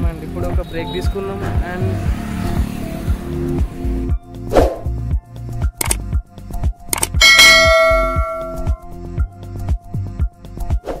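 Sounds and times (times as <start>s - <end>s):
background music with steady beat: 0.0s - 11.0s
click: 5.8s - 6.0s, 6.9s - 7.2s
bright bell ding: 7.2s - 8.8s.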